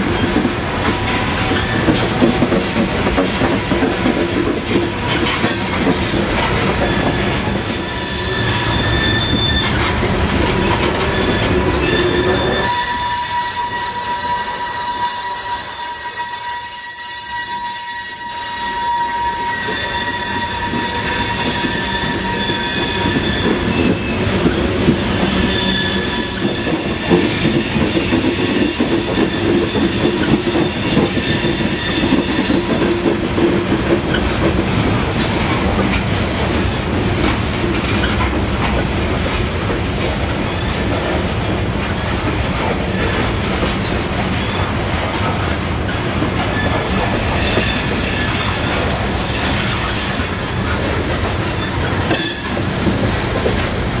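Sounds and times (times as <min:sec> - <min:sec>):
freight train rumbling past: 0:00.0 - 0:15.7, 0:18.2 - 0:54.0.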